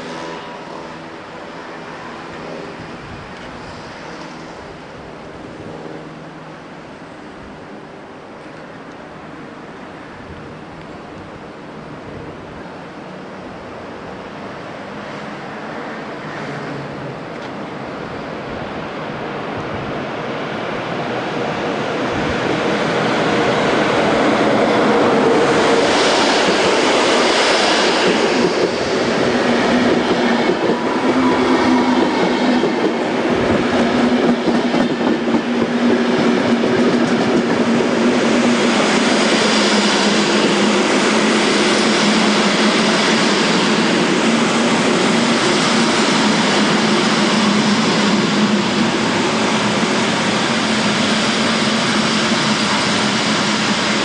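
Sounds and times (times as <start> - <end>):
train wheels rumbling on rail: 0.0 - 54.0
clickety-clack over rail joints: 16.4 - 17.7, 23.7 - 54.0.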